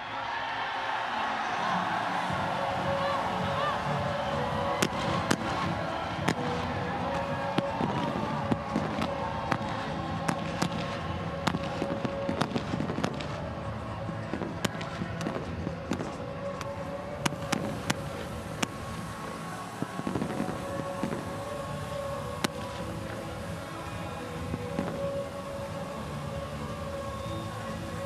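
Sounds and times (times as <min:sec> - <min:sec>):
background music and noise: 0:00.0 - 0:28.0
fireworks cracking: 0:01.7 - 0:28.0.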